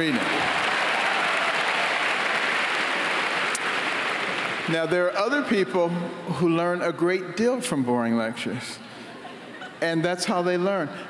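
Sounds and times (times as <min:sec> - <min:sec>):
large audience applauding: 0:00.0 - 0:05.1.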